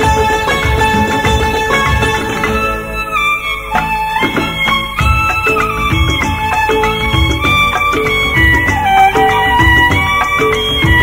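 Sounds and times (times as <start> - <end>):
percussion beat and bass: 0.0 - 3.0, 3.7 - 11.0
instrumental melody of held notes: 0.0 - 11.0.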